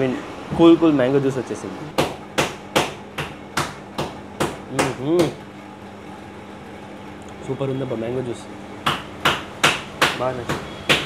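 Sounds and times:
sharp knocks: 0:02.0 - 0:05.4, 0:08.8 - 0:11.0.

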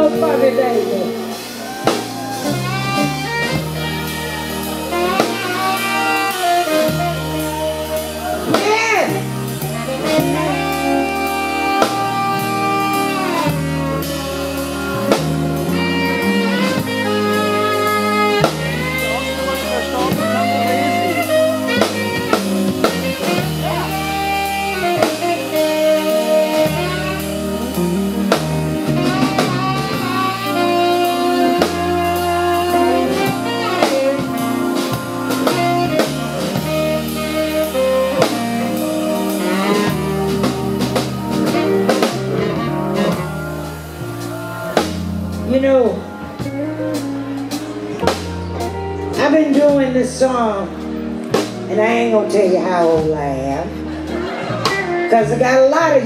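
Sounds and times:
drum kit: 0:00.0 - 0:56.0
electric bass: 0:00.0 - 0:56.0
guitar: 0:00.0 - 0:56.0
saxophone melody: 0:00.0 - 0:56.0.

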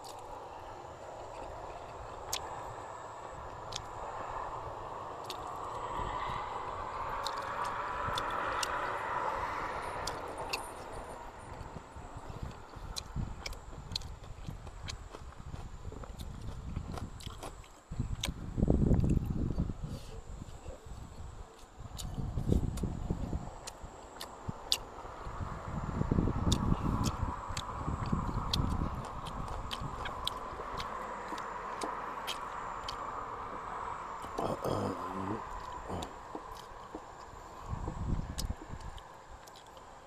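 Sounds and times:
wet chewing with mouth clicks: 0:00.0 - 0:00.4, 0:01.1 - 0:06.4, 0:07.0 - 0:19.4, 0:20.5 - 0:25.4, 0:26.3 - 0:33.2, 0:34.2 - 0:40.0
faint steady hum: 0:00.0 - 0:40.0.

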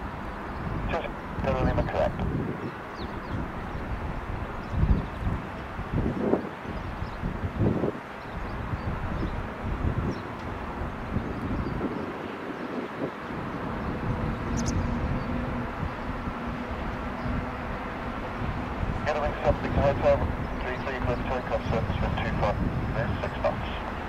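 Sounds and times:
jet engines running: 0:00.0 - 0:24.0
wind buffeting microphone: 0:00.0 - 0:24.0.

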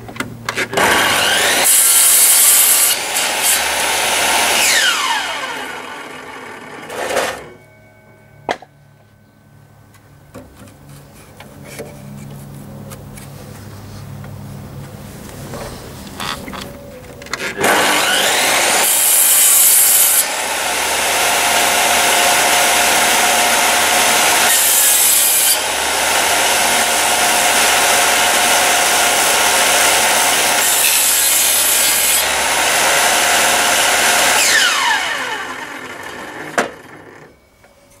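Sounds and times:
table saw cutting timber: 0:00.5 - 0:07.6, 0:17.3 - 0:37.4
saw blade winding down: 0:00.8 - 0:07.6, 0:17.4 - 0:37.4.

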